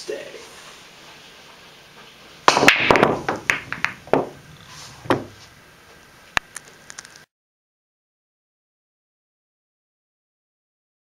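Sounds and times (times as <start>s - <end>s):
cue ball cracking into balls: 2.4s - 5.5s
pool balls clacking: 2.4s - 5.6s.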